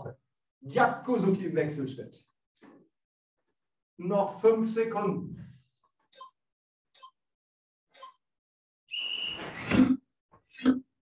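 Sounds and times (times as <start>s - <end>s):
alarm clock timer beep: 6.2s - 6.4s, 7.0s - 7.3s, 7.9s - 8.3s.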